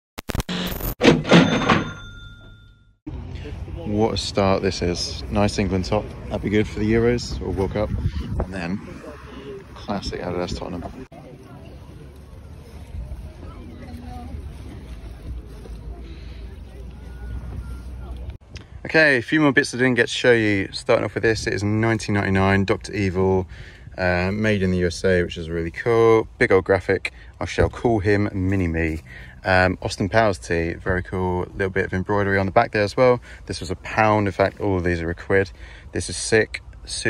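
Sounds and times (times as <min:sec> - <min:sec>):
hit with bell-like ring: 0:01.1 - 0:02.9
faint voices talking: 0:03.2 - 0:18.4
wind buffeting microphone: 0:06.0 - 0:11.1.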